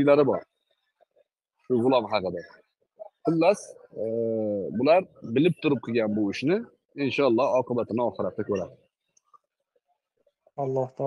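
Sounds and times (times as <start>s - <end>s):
man speaking: 1.6s - 8.9s, 10.4s - 11.0s.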